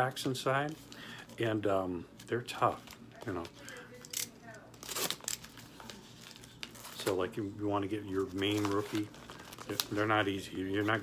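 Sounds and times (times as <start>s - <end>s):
packaging crinkling and rustling: 2.2s - 11.0s.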